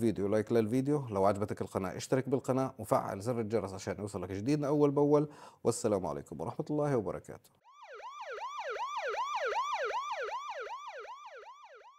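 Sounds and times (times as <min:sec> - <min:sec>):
electronic siren yelp: 0:07.6 - 0:11.9.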